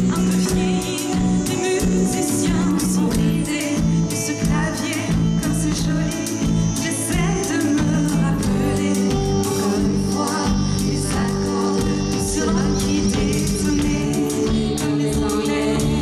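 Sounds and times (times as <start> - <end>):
drums: 0.0 - 16.0
electric bass: 0.0 - 16.0
keyboard: 0.0 - 16.0
person singing: 0.0 - 16.0.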